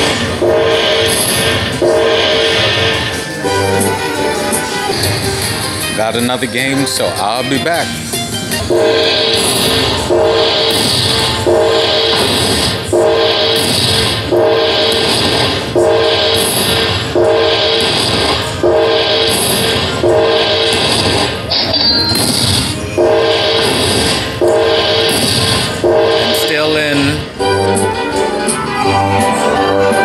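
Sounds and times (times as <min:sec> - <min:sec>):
slot machine chiming jingle: 0:00.0 - 0:05.2, 0:08.6 - 0:30.0.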